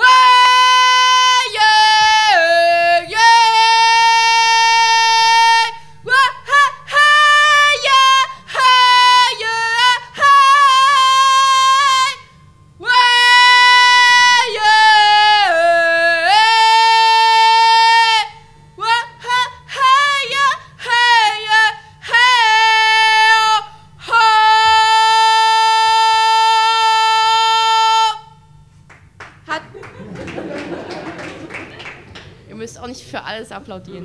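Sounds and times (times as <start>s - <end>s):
young woman singing unaccompanied: 0.0s - 28.4s.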